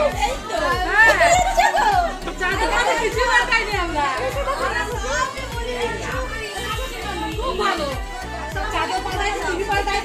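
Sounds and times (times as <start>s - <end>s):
music with steady low beat: 0.0s - 10.0s
voices chattering: 0.0s - 10.0s.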